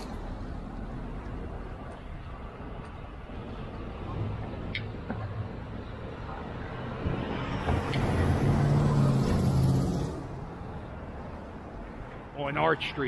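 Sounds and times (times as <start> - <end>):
traffic noise: 0.0 - 13.0
vehicle driving past: 6.5 - 10.8.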